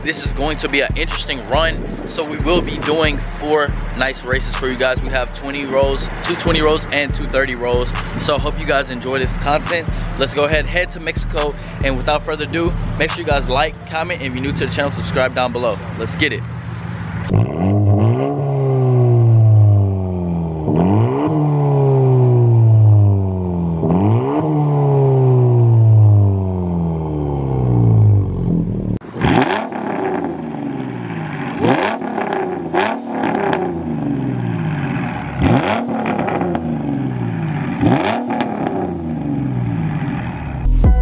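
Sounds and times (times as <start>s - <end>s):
car engine revving: 0.0s - 41.0s.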